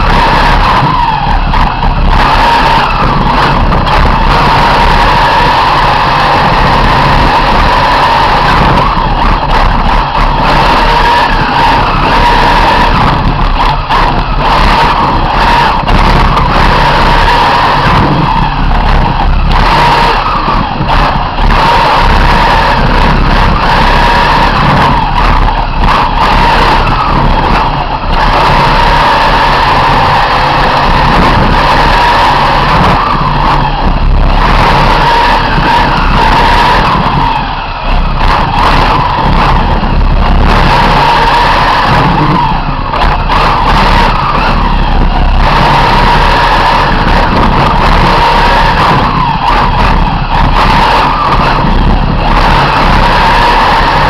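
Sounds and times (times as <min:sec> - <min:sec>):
high-pitched toy car motor: 0:00.0 - 0:54.0.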